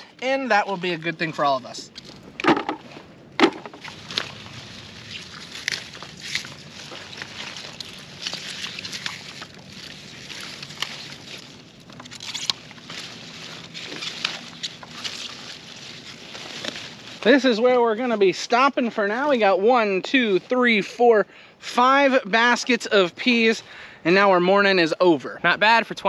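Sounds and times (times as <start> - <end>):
pea vines rustling and snapping: 0.3 - 18.1.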